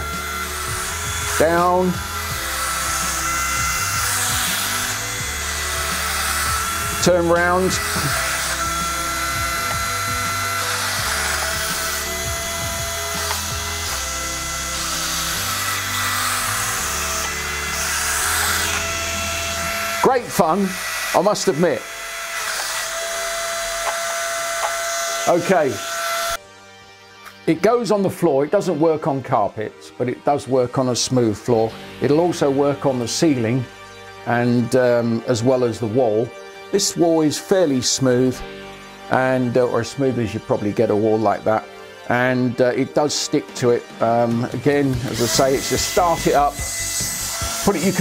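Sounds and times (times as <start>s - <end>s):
toy car fan whine: 0.0s - 26.4s, 44.2s - 48.0s.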